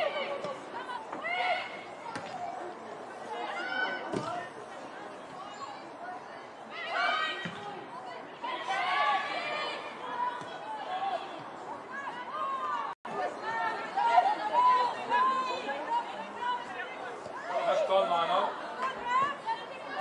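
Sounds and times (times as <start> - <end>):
background chatter: 0.0 - 20.0
voices calling and shouting: 0.0 - 20.0.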